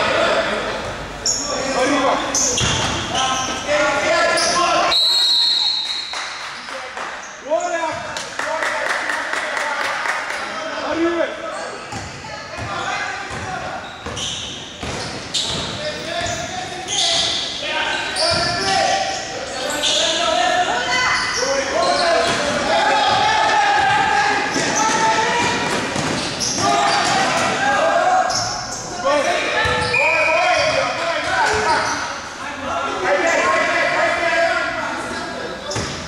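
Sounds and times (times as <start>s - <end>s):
basketball bouncing on court: 2.6s - 3.1s, 11.9s - 16.4s, 29.6s - 29.9s
players shouting: 15.9s - 34.8s.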